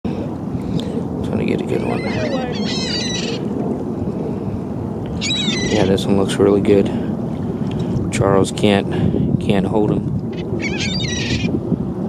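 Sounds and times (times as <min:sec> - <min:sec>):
water noise: 0:00.1 - 0:12.0
wind noise: 0:00.1 - 0:12.0
high wavering bird call: 0:01.8 - 0:03.4, 0:05.2 - 0:05.9, 0:10.4 - 0:11.5.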